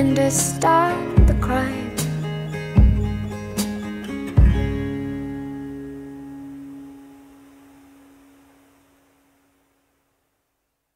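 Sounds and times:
acoustic guitar chord ringing: 0.0 - 9.6.

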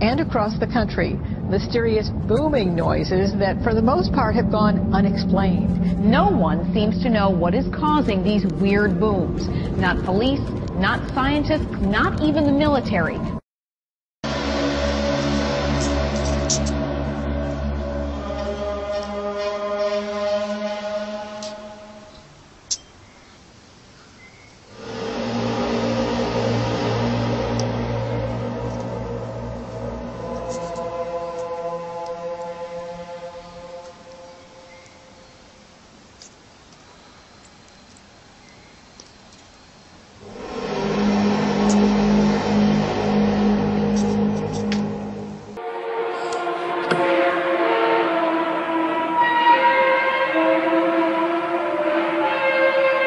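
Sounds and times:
deep horn-like drone: 0.0 - 13.4, 14.2 - 22.4, 24.7 - 35.4, 40.2 - 53.0.

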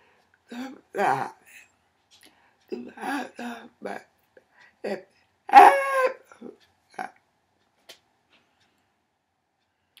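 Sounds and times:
woman drawn-out exclamation: 4.9 - 6.2.

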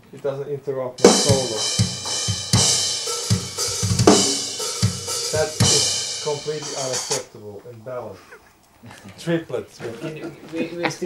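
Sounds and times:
kick drum hits: 1.0 - 5.6
cymbal crash: 1.0 - 7.2
cymbal wash: 1.0 - 7.2.

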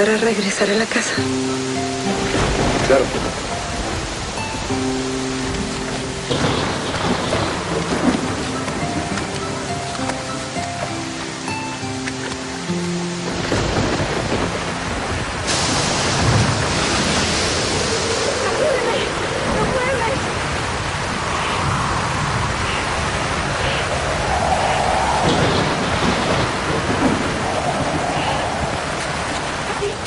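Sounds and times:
heavy rain: 0.0 - 30.0
soft music with held notes: 1.1 - 15.5
low rumble of thunder: 1.3 - 10.0, 13.2 - 30.0.

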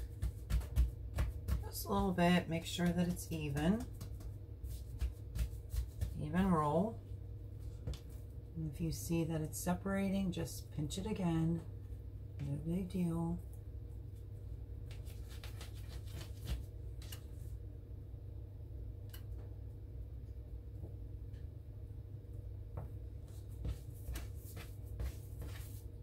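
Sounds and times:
hands kneading bread dough: 0.0 - 8.5, 13.5 - 17.7, 22.7 - 26.0
steady low hum: 0.0 - 26.0.

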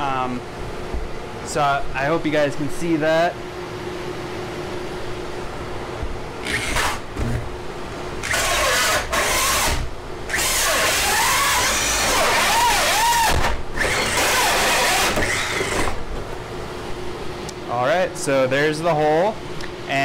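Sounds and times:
electric drill hole saw cutting: 6.4 - 7.0, 8.2 - 16.0.

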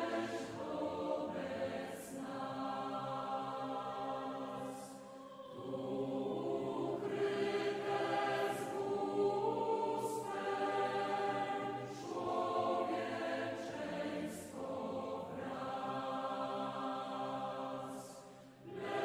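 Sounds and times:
voices singing a slow hymn: 0.0 - 19.0.

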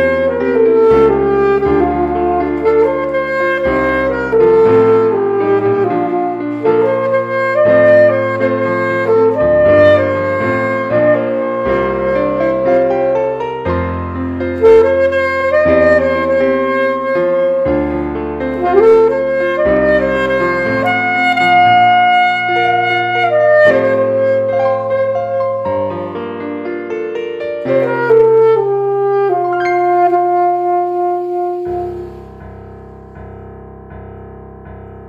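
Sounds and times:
alto saxophone melody: 0.0 - 33.5
piano and bass backing track: 0.0 - 35.0.

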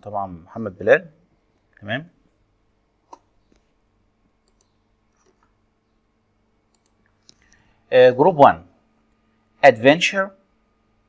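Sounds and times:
computer mouse clicks: 3.1 - 3.7, 4.4 - 5.5, 6.7 - 7.6.

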